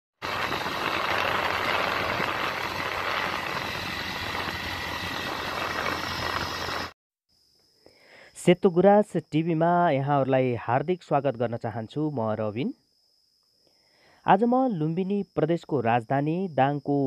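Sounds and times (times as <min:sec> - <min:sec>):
motorcycle engine hum: 0:00.2 - 0:07.0
wind and road noise: 0:00.2 - 0:07.0.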